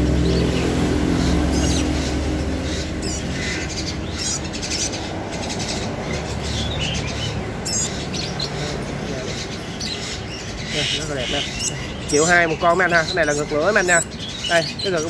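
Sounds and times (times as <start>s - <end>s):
songbirds chirping: 0.0s - 15.0s.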